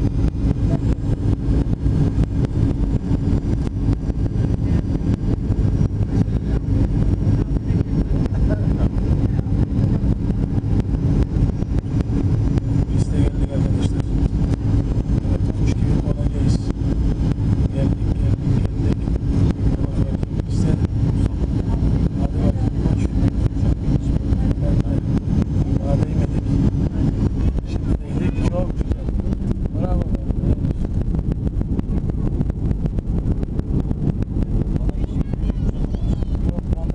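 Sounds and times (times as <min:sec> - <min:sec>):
airliner engines rumbling: 0:00.0 - 0:36.9
rushing air: 0:00.0 - 0:36.9
steady hum: 0:00.0 - 0:36.9.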